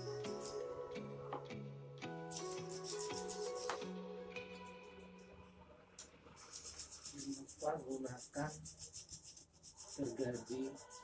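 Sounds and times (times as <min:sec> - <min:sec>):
background music: 0:00.0 - 0:06.1
hand saw rasping through branch: 0:06.4 - 0:11.0.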